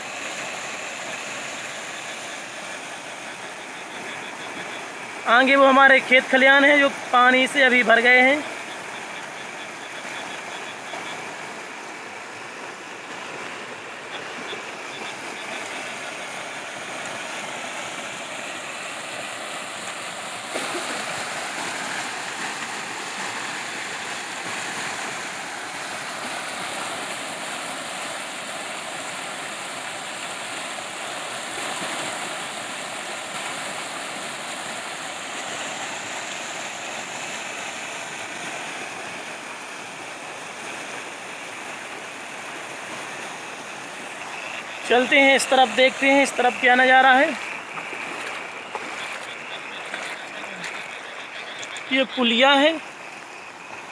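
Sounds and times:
floodwater rushing over culvert: 0.0 - 53.9.

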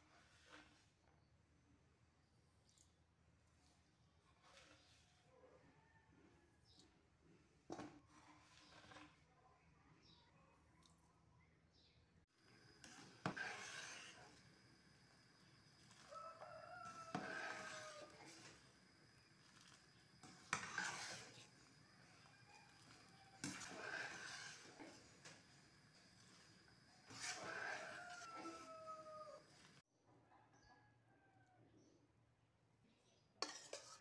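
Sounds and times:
scraping: 12.4 - 29.8
rooster crowing: 15.9 - 18.5, 27.0 - 29.7.

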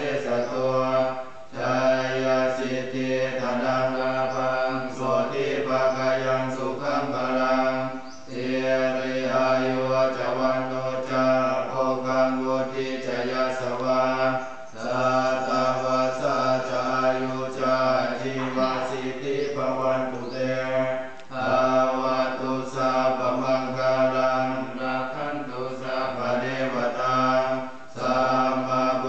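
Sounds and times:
monks chanting in monotone: 0.0 - 29.0.

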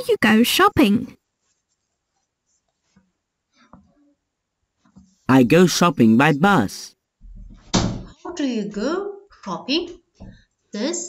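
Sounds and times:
woman speaking: 0.0 - 1.2, 8.3 - 10.0.

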